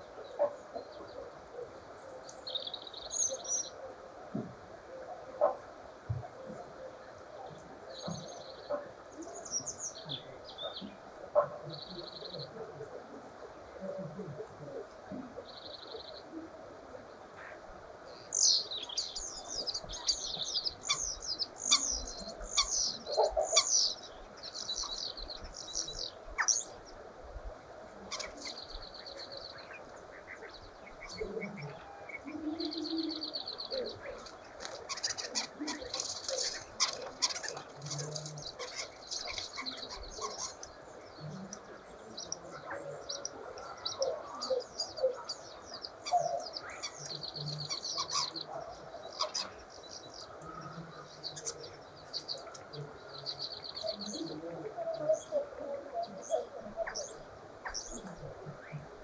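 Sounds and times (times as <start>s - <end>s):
starling singing: 18.2s - 26.8s, 28.1s - 58.2s
wings fluttering: 34.1s - 40.4s.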